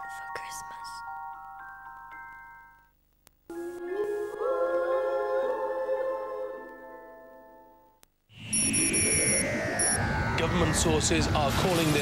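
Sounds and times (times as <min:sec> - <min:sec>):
heavy low rumble: 0:09.9 - 0:12.0.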